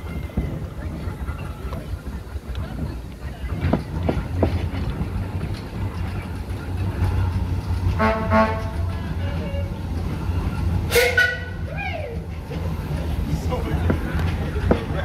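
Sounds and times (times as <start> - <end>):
steam wagon engine rumble: 0.0 - 15.0.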